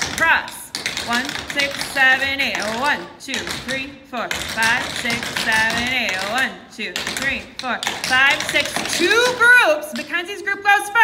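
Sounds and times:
tap shoes on wooden floor: 0.0s - 10.2s.

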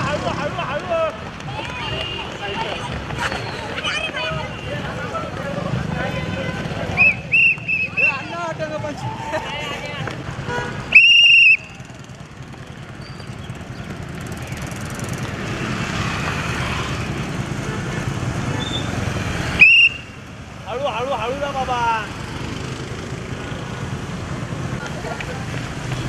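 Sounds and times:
voices calling out: 0.0s - 16.1s
road traffic rumble: 0.0s - 26.0s
loud whistle blasts: 7.0s - 8.3s, 10.9s - 11.8s, 19.6s - 20.2s.

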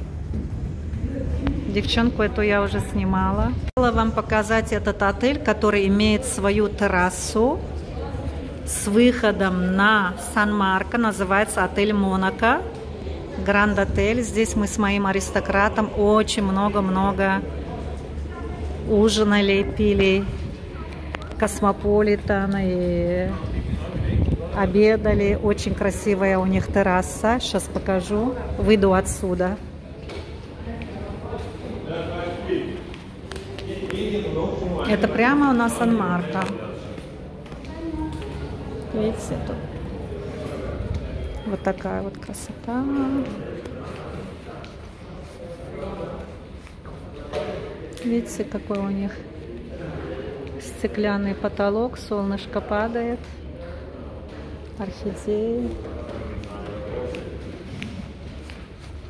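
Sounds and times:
steady low rumble: 0.0s - 8.6s
indistinct voices in a hall: 0.0s - 59.0s.

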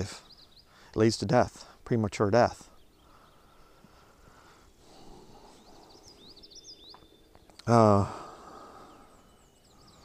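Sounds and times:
songbird chirping: 0.0s - 10.0s.

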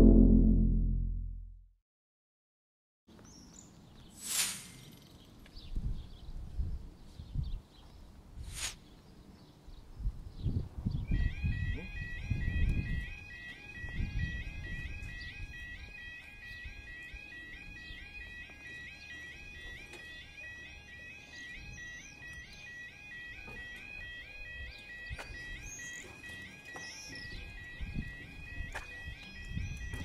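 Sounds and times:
level-crossing alarm warbling: 0.0s - 1.1s, 11.0s - 30.0s
low rumble: 0.0s - 1.5s.

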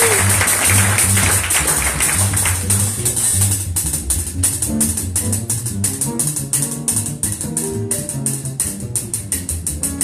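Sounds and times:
plucked double bass: 0.0s - 10.0s.

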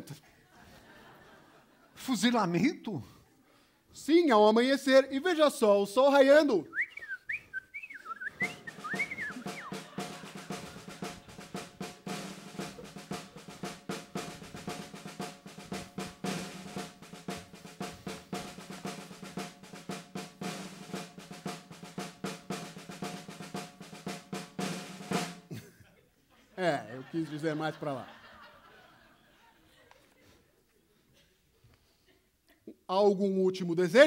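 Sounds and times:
high whistled glides: 6.8s - 9.9s
snare drum roll: 8.4s - 25.5s.

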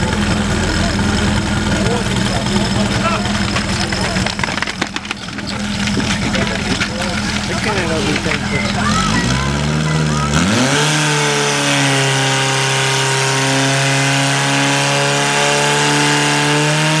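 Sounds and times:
pump engine revving: 0.0s - 17.0s.

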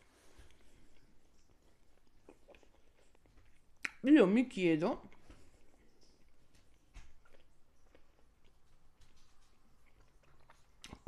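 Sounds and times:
faint chewing: 0.0s - 4.2s, 5.0s - 11.0s
mouth clicks: 3.8s - 4.0s.

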